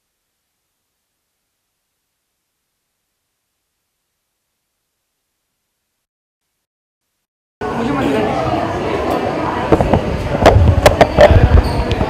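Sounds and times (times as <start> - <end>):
busy background noise: 7.6 - 12.0.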